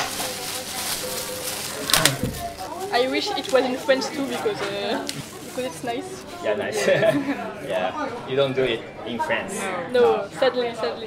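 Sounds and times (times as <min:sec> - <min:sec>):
plastic wrapper crinkling and tearing: 0:00.0 - 0:06.0
faint chatter: 0:00.0 - 0:11.0.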